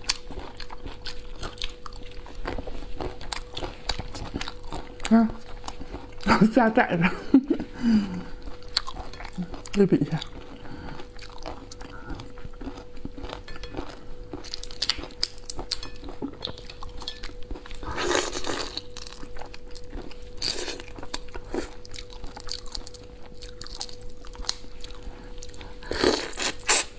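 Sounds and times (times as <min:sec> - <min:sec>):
chewing and lip smacking: 0:00.0 - 0:06.3, 0:08.4 - 0:26.9.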